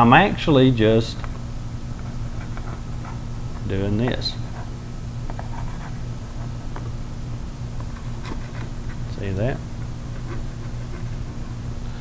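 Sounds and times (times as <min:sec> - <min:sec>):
steady low hum: 0:00.0 - 0:12.0
palette knife scraping paint: 0:09.8 - 0:11.6.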